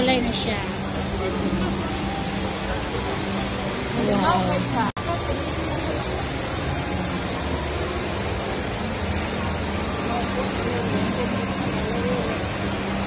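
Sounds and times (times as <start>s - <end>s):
indoor waterfall rushing: 0.0s - 13.0s
murmur of crowd voices: 0.0s - 13.0s.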